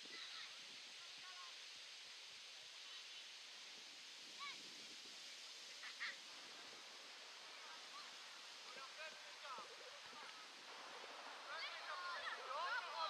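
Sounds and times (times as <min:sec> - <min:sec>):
outdoor hiss: 0:00.0 - 0:13.0.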